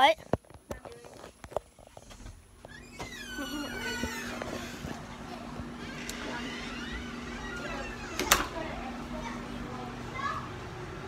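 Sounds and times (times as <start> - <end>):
steady low hum: 0.2 - 11.0
faint children's voices: 3.2 - 11.0.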